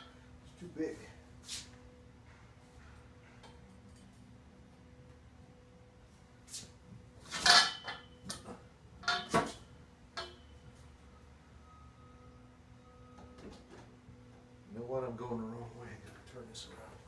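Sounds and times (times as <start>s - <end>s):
metal conduit knocking and clinking: 7.5s - 9.5s, 10.2s - 10.5s.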